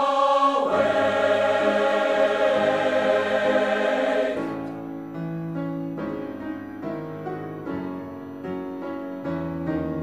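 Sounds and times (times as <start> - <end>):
mixed choir singing: 0.0 - 4.8
piano playing: 0.0 - 10.0.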